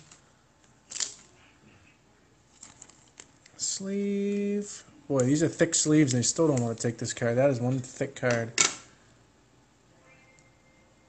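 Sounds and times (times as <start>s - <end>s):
plastic card sleeve rustling: 2.5s - 8.5s.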